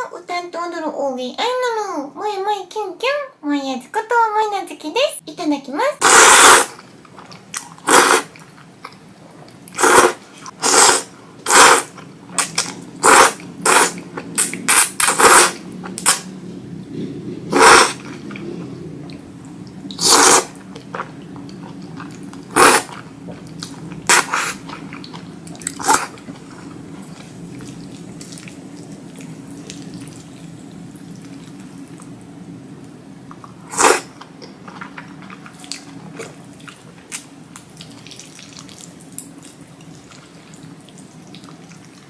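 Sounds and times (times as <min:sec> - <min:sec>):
noodles being slurped: 0:06.0 - 0:08.5, 0:09.7 - 0:16.2, 0:19.9 - 0:21.1, 0:22.5 - 0:23.0.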